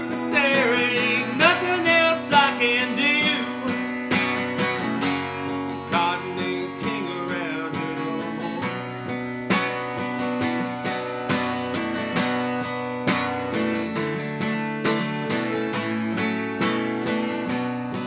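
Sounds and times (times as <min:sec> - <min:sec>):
acoustic guitar strumming chords: 0:00.0 - 0:18.0.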